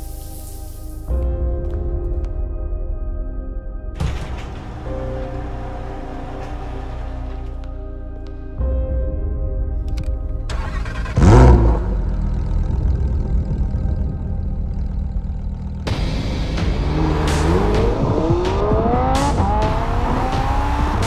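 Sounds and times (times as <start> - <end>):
car engine revving: 4.0 - 8.2, 10.5 - 21.0
car engine idling: 4.0 - 8.5, 10.4 - 20.8
car accelerating hard: 4.4 - 7.8, 10.6 - 21.0.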